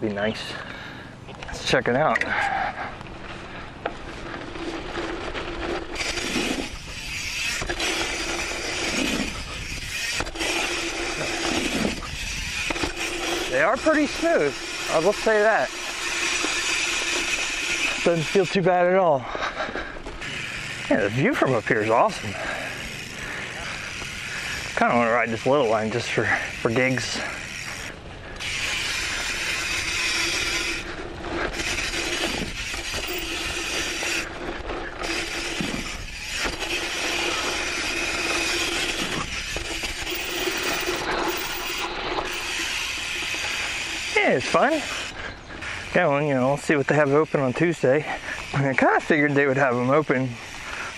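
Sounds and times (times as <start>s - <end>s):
tyres rolling on dirt: 1.5s - 50.9s
freewheel ratchet buzzing: 4.6s - 18.7s, 20.0s - 50.9s.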